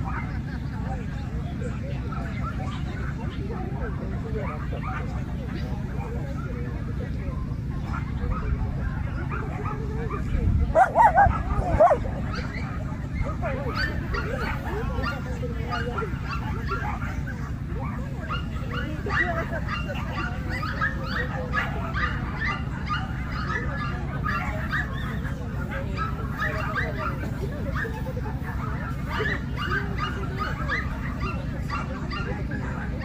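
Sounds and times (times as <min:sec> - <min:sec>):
dogs barking: 0:00.0 - 0:00.5, 0:02.0 - 0:06.5, 0:07.8 - 0:33.0
people talking: 0:00.0 - 0:33.0
high yapping barks: 0:10.7 - 0:12.6.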